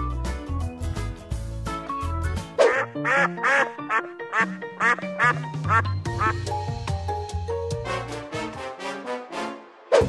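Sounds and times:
duck quacking: 0:02.6 - 0:06.4
music with steady beat: 0:04.8 - 0:08.3.

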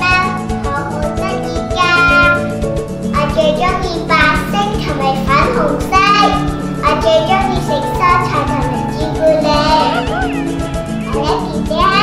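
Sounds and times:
background music: 0:00.0 - 0:12.0
girl speaking: 0:03.2 - 0:10.4.

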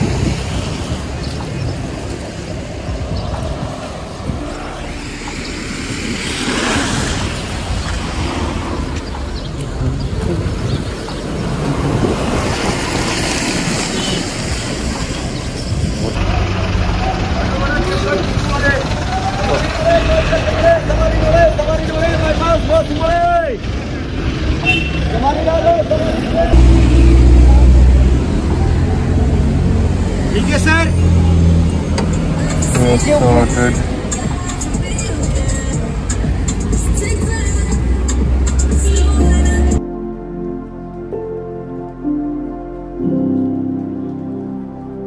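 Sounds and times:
diesel bus engines running: 0:00.0 - 0:39.8
voices: 0:16.2 - 0:29.6, 0:30.3 - 0:39.8.

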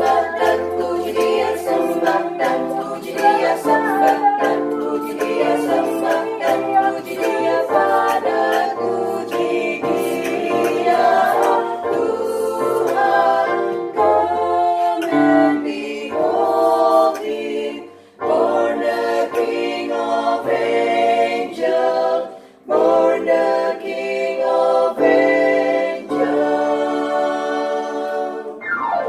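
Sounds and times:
vocal ensemble singing a carol: 0:00.0 - 0:28.8
electronic keyboard bass notes: 0:28.6 - 0:29.0.

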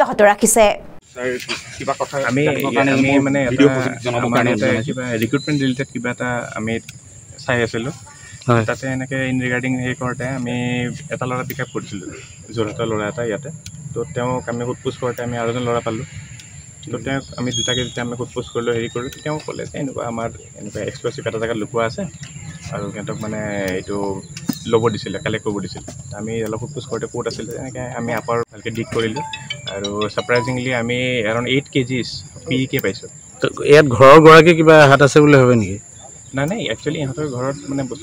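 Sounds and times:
man speaking: 0:01.2 - 0:16.0, 0:28.7 - 0:31.2
high-pitched insect drone: 0:01.8 - 0:38.0.

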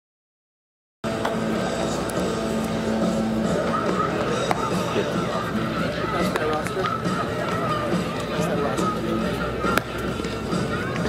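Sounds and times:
music: 0:01.0 - 0:11.0
indistinct voices: 0:01.1 - 0:11.0.

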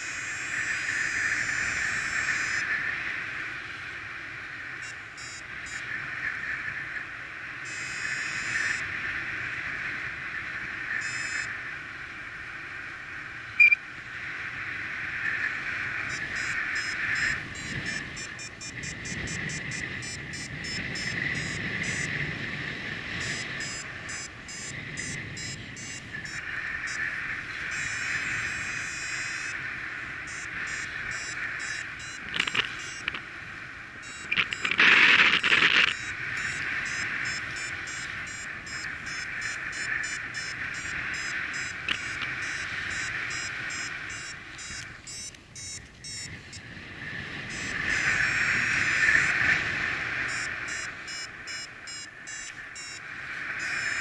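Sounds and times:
wind rushing over microphone: 0:00.0 - 0:54.0
variometer beeping rapidly: 0:04.8 - 0:05.8, 0:07.7 - 0:08.8, 0:11.0 - 0:11.5, 0:13.6 - 0:13.8, 0:16.1 - 0:22.1, 0:23.2 - 0:27.0, 0:27.7 - 0:29.6, 0:30.3 - 0:33.2, 0:34.0 - 0:46.6, 0:47.5 - 0:47.8, 0:50.3 - 0:53.0, 0:53.6 - 0:54.0.

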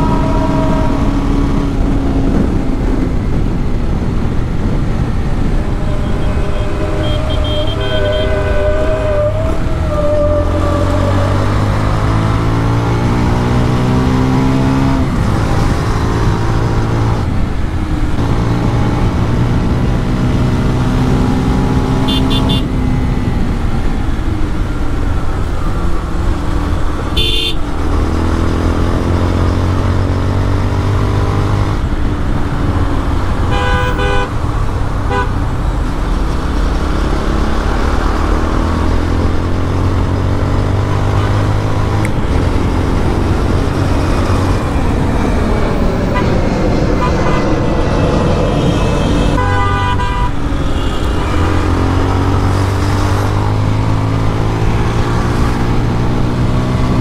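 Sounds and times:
vehicle horns tooting: 0:00.0 - 0:01.6, 0:05.4 - 0:11.3, 0:21.9 - 0:22.7, 0:27.1 - 0:27.7, 0:33.5 - 0:34.4, 0:35.1 - 0:35.4, 0:47.0 - 0:52.3
motorcycle engine accelerating: 0:00.0 - 0:27.1, 0:35.8 - 0:49.4.

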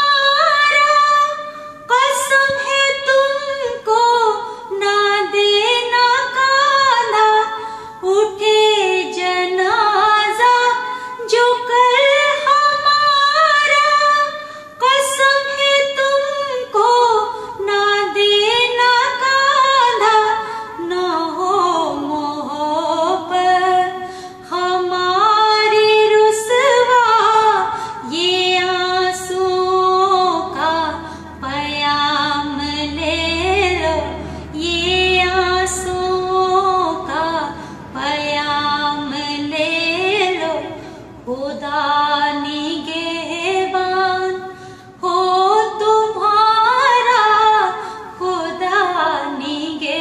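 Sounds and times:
woman singing into microphone: 0:00.0 - 0:50.0.

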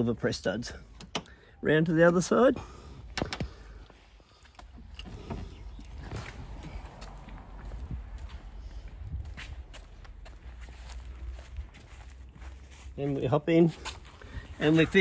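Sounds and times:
footsteps on concrete: 0:06.0 - 0:14.7.

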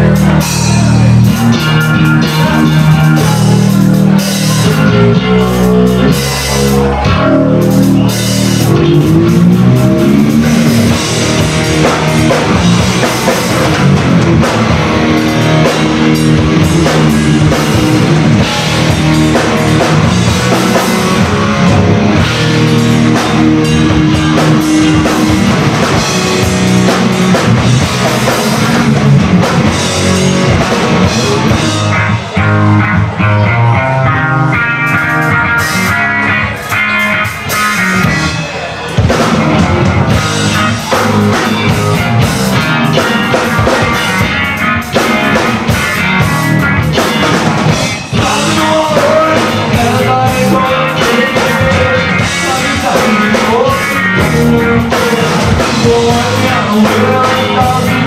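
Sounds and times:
bass guitar: 0:00.0 - 0:58.0
drum kit: 0:00.0 - 0:58.0
electric guitars: 0:00.0 - 0:58.0.

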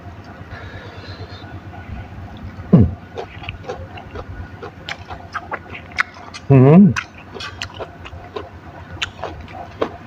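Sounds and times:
low steady hum: 0:00.0 - 0:10.0
person chewing with mouth clicks: 0:02.3 - 0:10.0.

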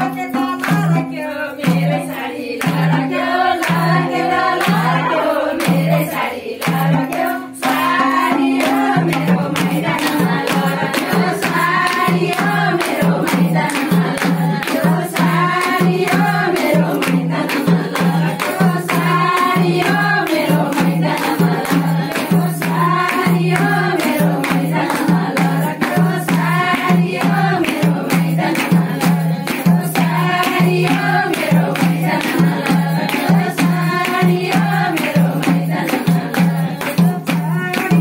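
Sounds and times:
hand drum: 0:00.0 - 0:38.0
hand-clapping: 0:00.0 - 0:38.0
women singing in chorus: 0:00.0 - 0:38.0.

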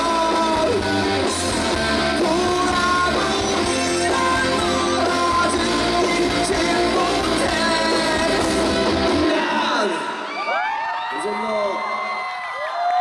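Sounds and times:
crowd screaming and cheering: 0:00.0 - 0:13.0
rock band with singer: 0:00.0 - 0:13.0.

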